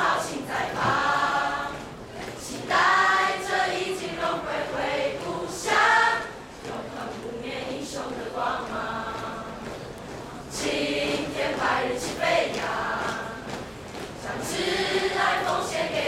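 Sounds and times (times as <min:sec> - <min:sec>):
children's choir singing: 0:00.0 - 0:16.0.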